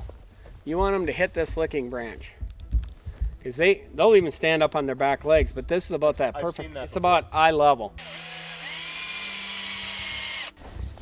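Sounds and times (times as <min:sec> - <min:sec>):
cordless drill whining: 0:08.0 - 0:10.6.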